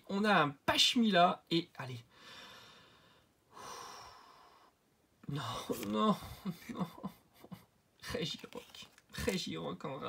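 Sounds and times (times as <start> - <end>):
man breathing close to microphone: 2.1 - 4.8.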